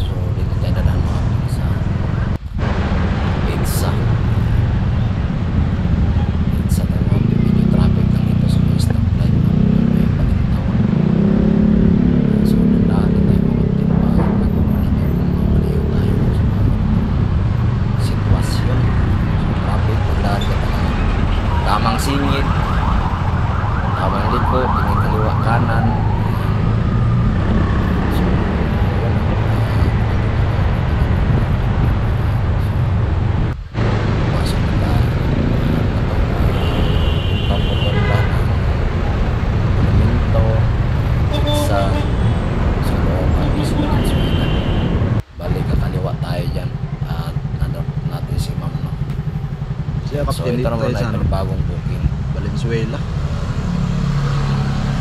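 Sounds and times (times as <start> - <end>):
road and traffic noise: 0.0 - 55.0.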